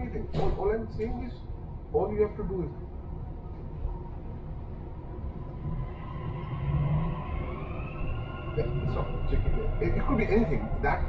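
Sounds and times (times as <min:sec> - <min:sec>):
train rumble: 0:00.0 - 0:11.0
train motor whine: 0:05.0 - 0:11.0.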